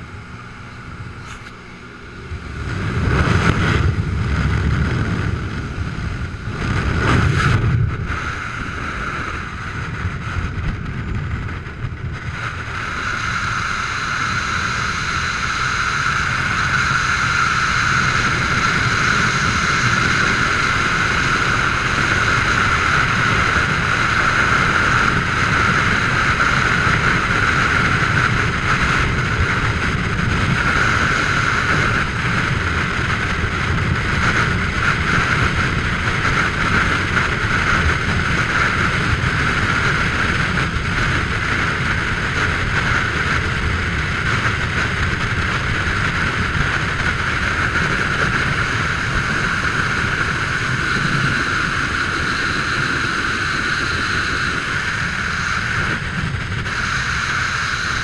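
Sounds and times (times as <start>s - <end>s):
freefall wind buffeting camera: 0.0s - 58.0s.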